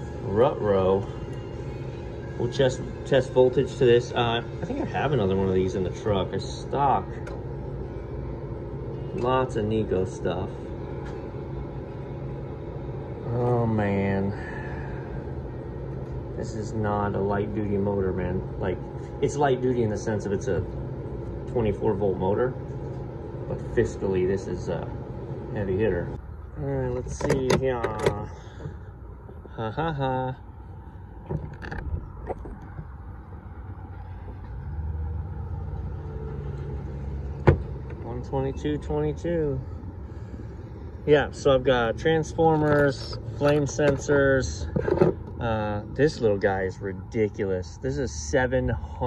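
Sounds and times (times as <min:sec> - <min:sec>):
faint steady whine: 0:00.0 - 0:49.0
low kitchen machine hum: 0:00.0 - 0:49.0.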